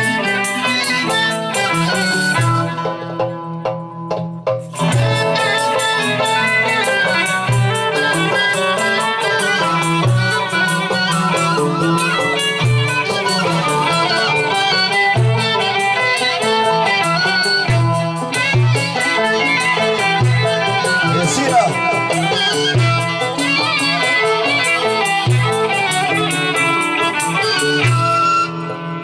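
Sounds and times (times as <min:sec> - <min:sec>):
oud plucking melody: 0:00.0 - 0:29.0
flute: 0:20.9 - 0:23.3, 0:27.3 - 0:29.0.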